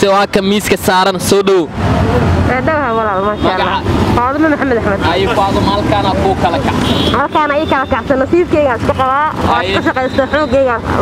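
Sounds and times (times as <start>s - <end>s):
man talking into microphone: 5.0s - 6.9s.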